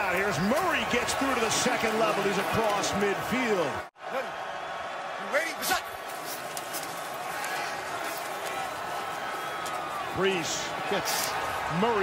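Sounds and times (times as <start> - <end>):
stadium ambience: 0.0 - 12.0.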